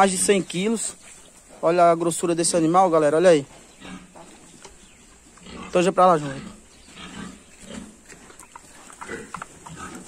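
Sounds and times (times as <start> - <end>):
pigs grunting: 1.4 - 4.5, 5.2 - 10.0.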